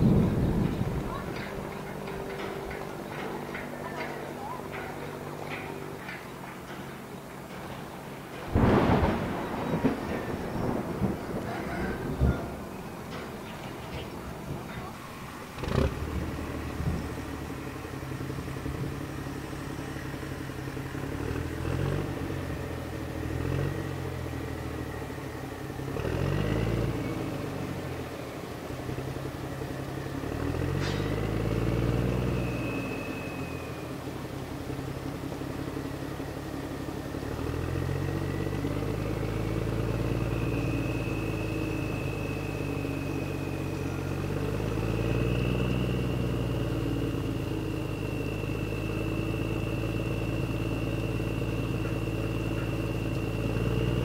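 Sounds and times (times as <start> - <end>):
boat engine droning: 0.0 - 54.0.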